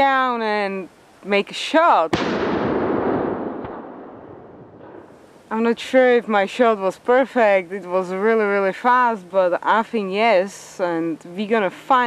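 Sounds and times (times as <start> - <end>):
rifle shot echoing: 2.1 - 5.2.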